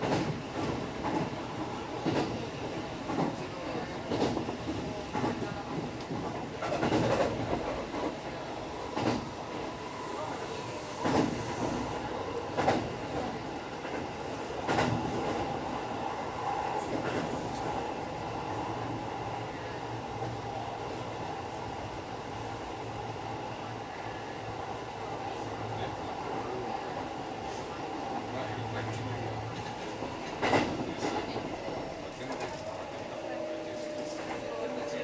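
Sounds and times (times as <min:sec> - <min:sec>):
train wheels rumbling on rail: 0:00.0 - 0:35.0.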